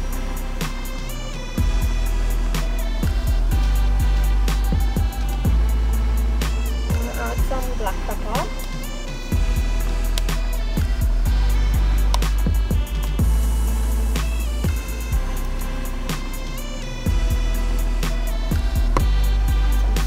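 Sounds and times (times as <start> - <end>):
music with deep bass and drums: 0.0 - 20.0.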